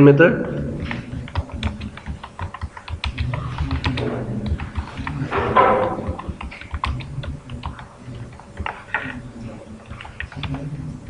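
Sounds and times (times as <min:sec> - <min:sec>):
computer keyboard typing: 0:00.4 - 0:10.9.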